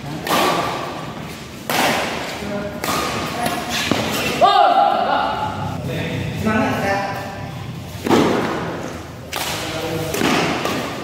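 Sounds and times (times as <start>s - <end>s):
badminton racket hitting shuttlecock: 0.1s - 4.4s.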